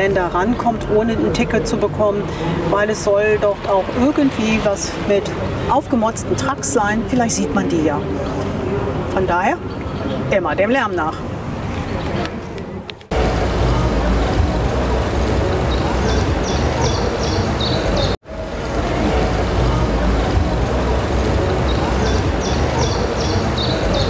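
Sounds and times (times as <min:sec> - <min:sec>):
music: 0:13.1 - 0:24.0.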